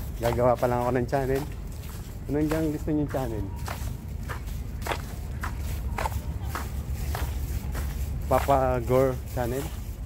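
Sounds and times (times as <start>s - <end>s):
footsteps walking: 0.0s - 10.0s.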